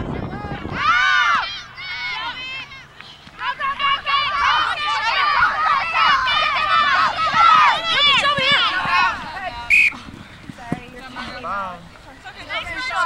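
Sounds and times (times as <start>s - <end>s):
women shouting and cheering: 0.0s - 9.7s, 12.2s - 13.0s
referee whistle blast: 9.7s - 10.0s.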